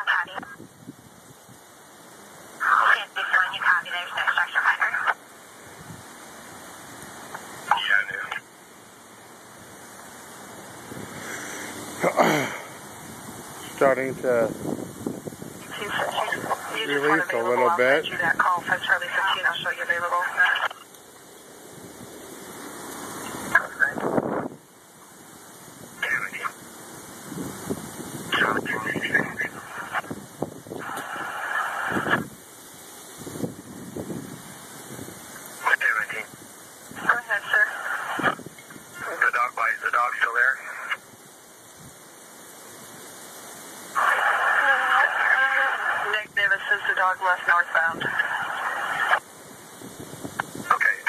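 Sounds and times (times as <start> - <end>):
radio rushing noise: 0.0 - 0.6, 2.5 - 5.6, 6.8 - 12.9, 13.5 - 14.7, 15.4 - 20.9, 22.6 - 24.6, 25.8 - 26.7, 28.0 - 32.4, 35.4 - 41.1, 43.9 - 49.3, 50.2 - 51.0
voices over scanner radio: 0.0 - 0.6, 2.6 - 5.2, 7.6 - 8.5, 15.6 - 20.9, 23.2 - 24.1, 26.0 - 26.6, 28.3 - 30.1, 30.8 - 32.3, 35.6 - 36.3, 37.0 - 41.0, 44.0 - 49.2, 50.6 - 51.0.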